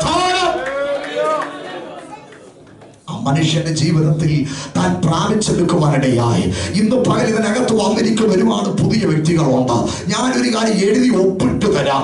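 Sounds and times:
man preaching into a microphone: 0:00.0 - 0:00.8, 0:03.0 - 0:12.0.

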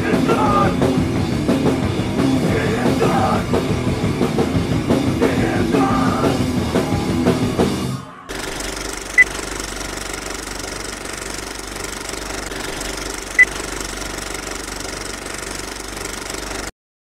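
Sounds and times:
film projector rattling: 0:08.3 - 0:16.7.

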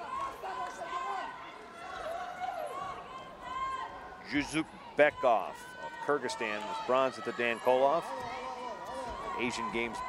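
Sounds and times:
low crowd murmur: 0:00.0 - 0:10.0
people talking and calling out: 0:00.0 - 0:10.0.

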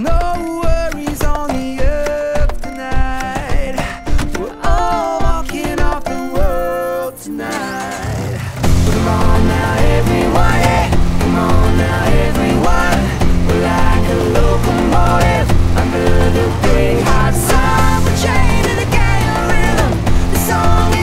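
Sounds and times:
upbeat acoustic pop instrumental: 0:00.0 - 0:21.0.

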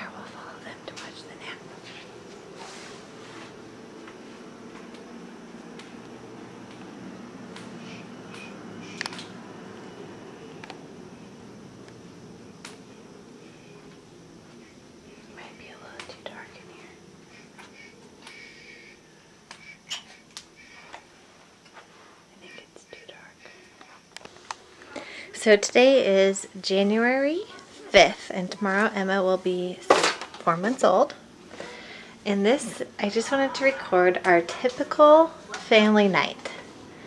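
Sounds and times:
person whispering: 0:00.0 - 0:02.1, 0:15.2 - 0:17.0, 0:22.3 - 0:24.0
low room hum: 0:00.0 - 0:37.0.

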